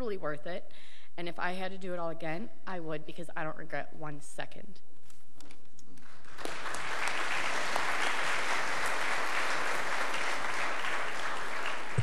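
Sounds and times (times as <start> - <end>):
congregation applauding: 6.2 - 12.0.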